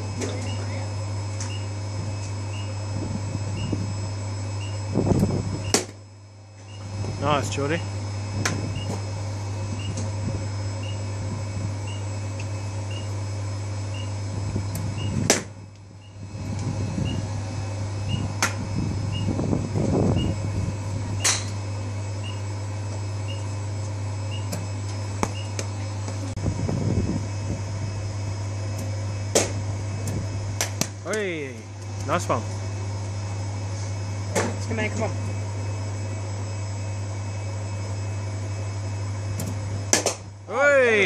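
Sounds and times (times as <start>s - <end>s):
pitching machine electric hum: 0.0s - 41.0s
sharp cracks of balls hit: 15.3s - 15.5s, 29.3s - 29.6s, 39.4s - 40.3s.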